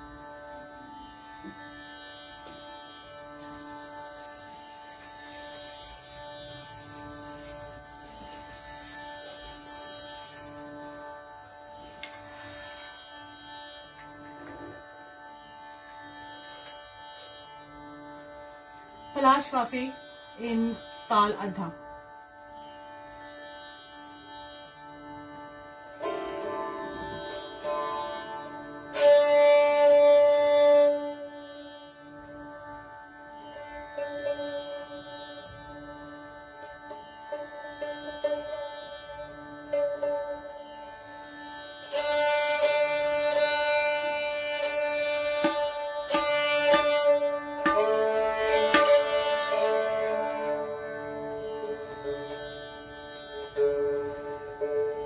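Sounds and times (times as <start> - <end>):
sarangi bowed notes: 0.0 - 55.0
steady drone: 0.0 - 55.0.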